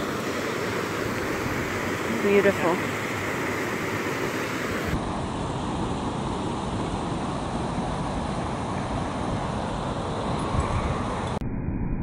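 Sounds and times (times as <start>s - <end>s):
water rushing over rocks: 0.0s - 10.3s.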